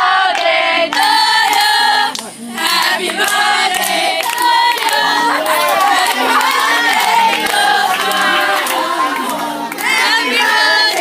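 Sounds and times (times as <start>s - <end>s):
young women singing together: 0.0s - 11.0s
hand-clapping: 0.3s - 11.0s
women cheering: 5.0s - 10.4s.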